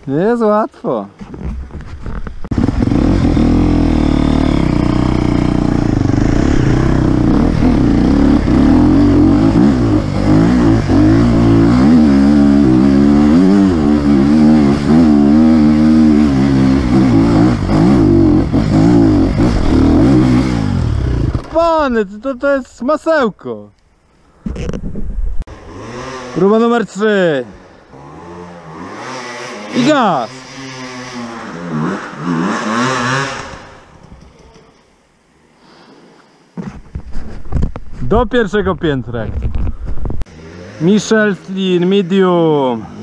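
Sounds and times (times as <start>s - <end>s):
motorcycle engine revving: 1.5s - 21.6s, 25.4s - 26.8s, 27.5s - 33.9s, 40.1s - 41.9s.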